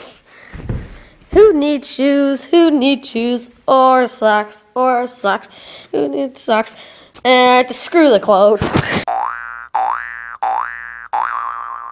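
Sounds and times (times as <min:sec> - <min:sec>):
cartoon boing: 0:09.1 - 0:11.9.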